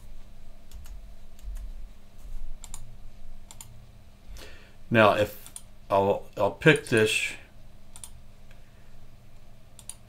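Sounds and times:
faint electrical hum: 0.0 - 10.0
mouse and keyboard clicks: 2.6 - 2.9, 7.9 - 8.2.

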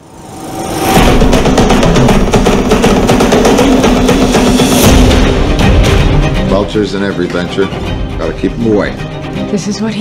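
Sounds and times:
orchestral trailer music: 0.0 - 10.0
driving drum rhythm: 1.0 - 7.1.

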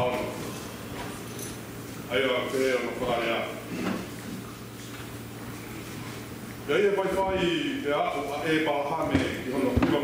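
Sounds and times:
man reading aloud: 6.7 - 10.0.

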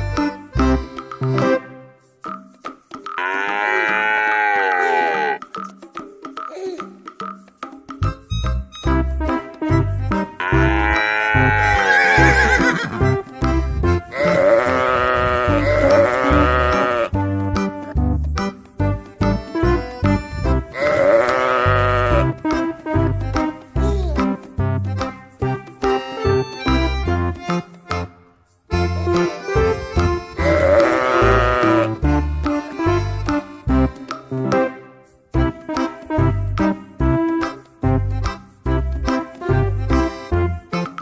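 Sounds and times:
sheep bleating: 3.2 - 5.4, 10.4 - 13.0, 14.1 - 17.2, 20.7 - 22.4, 30.4 - 32.0
background music with bass beat: 5.4 - 41.0.

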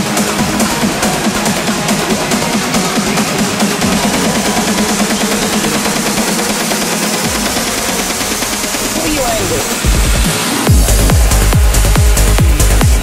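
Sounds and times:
trance music with synth pattern: 0.0 - 13.0.

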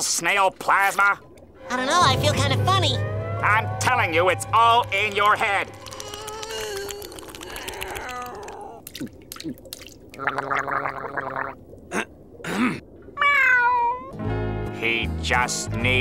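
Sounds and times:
gurgling slurps drinking water: 5.0 - 12.8
cartoon meow-like call: 13.2 - 14.2.

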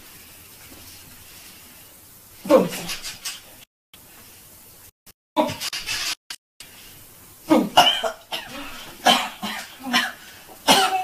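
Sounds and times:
person coughing: 7.5 - 11.0.

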